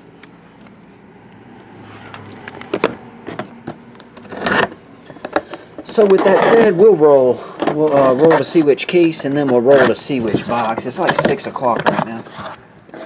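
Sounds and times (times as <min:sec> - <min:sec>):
cardboard rustle: 0:04.2 - 0:13.0.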